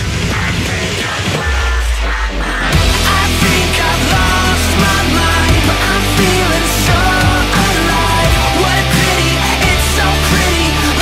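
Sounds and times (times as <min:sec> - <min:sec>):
nu metal backing track: 0:00.0 - 0:11.0
electric guitar playing: 0:02.7 - 0:11.0.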